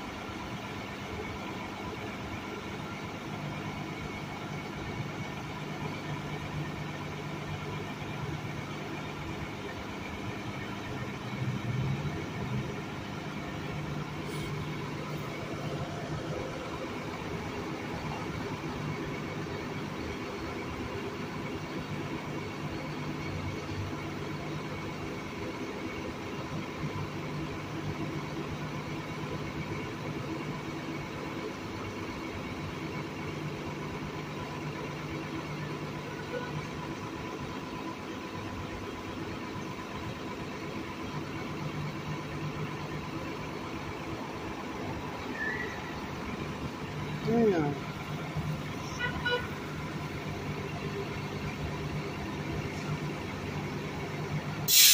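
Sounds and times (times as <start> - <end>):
vehicle engine hum: 0.0 - 54.9
passing traffic: 9.2 - 22.1, 42.5 - 54.9.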